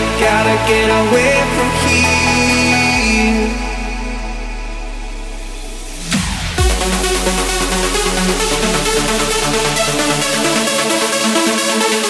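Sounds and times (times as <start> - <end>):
low bass tone: 0.0 - 10.7
sustained synth chords: 0.0 - 12.0.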